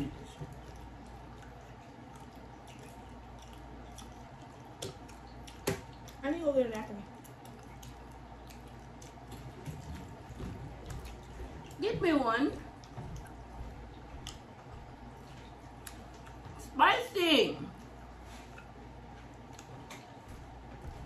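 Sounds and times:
chewing and mouth sounds: 0.0 - 16.8, 17.7 - 21.0.

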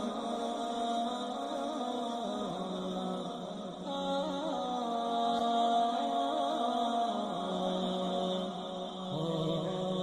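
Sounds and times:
solo voice chanting: 0.0 - 10.0.

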